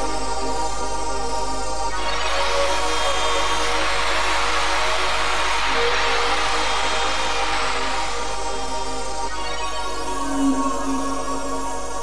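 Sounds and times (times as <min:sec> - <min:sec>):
rave dance music: 0:02.0 - 0:12.0.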